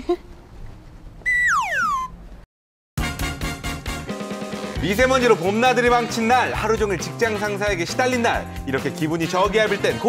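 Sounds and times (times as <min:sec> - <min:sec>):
descending whistle: 0:01.2 - 0:02.2.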